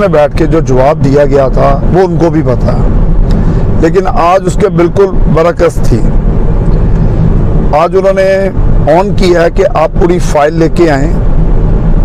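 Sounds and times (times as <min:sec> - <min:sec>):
man talking: 0:00.0 - 0:03.0, 0:03.8 - 0:06.2, 0:07.7 - 0:11.2
car engine and road noise: 0:00.0 - 0:12.0.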